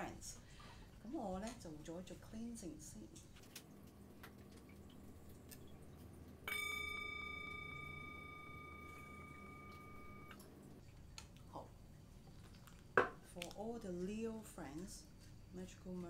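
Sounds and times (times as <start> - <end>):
metal singing bowl ringing: 6.4 - 10.4.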